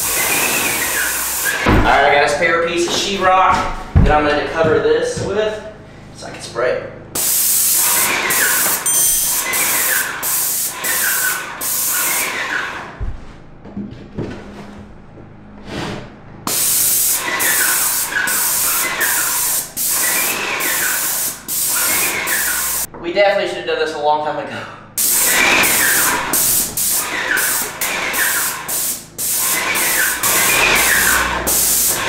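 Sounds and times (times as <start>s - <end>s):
paint spray gun hissing: 0.0s - 1.8s, 7.2s - 12.4s, 16.5s - 22.9s, 25.0s - 32.0s.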